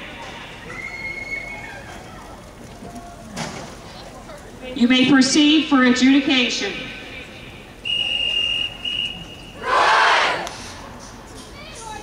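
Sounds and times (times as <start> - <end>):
whistle blasts: 7.8 - 9.7
band shouting in unison: 9.6 - 10.4.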